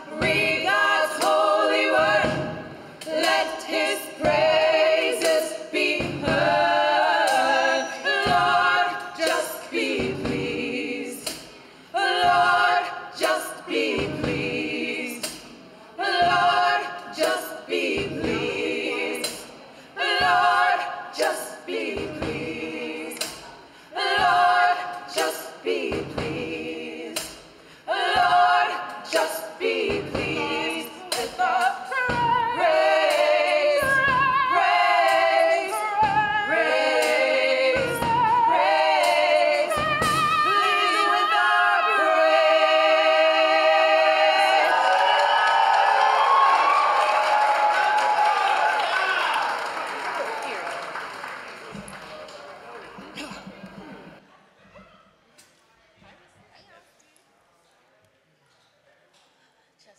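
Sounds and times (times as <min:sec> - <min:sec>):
gospel choir singing: 0:00.0 - 0:54.3
snare and cymbal strokes: 0:00.2 - 0:16.6, 0:21.2 - 0:24.3, 0:25.1 - 0:40.7.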